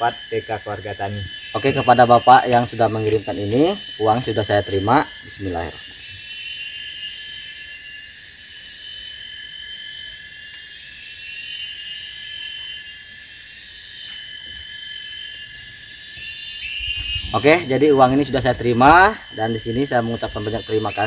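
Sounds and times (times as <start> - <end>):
high-pitched insect chorus: 0.0 - 21.0.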